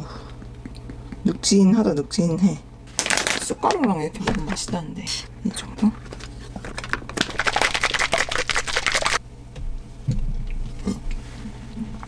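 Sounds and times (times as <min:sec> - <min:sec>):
shaker cup rattling: 0:05.8 - 0:09.2.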